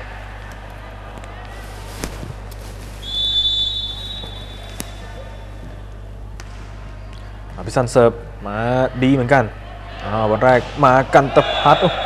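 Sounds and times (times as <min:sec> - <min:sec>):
referee's whistle blast: 0:03.0 - 0:05.1.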